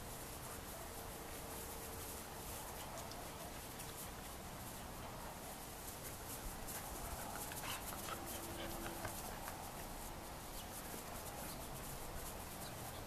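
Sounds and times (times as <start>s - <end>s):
puppies scuffling on grass: 0.0s - 13.0s
soft dog noises: 0.0s - 13.0s.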